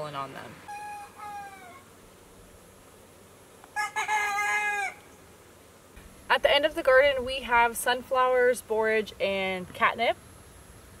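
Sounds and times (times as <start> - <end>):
rooster crowing: 0.7 - 1.9, 3.7 - 5.1.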